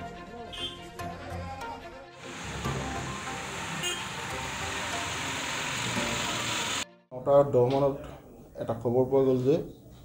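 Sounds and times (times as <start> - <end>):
faint music: 6.0 - 10.0.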